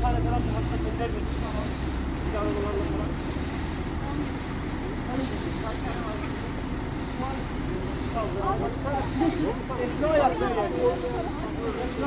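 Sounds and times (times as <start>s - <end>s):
people talking at a distance: 0.0s - 12.0s.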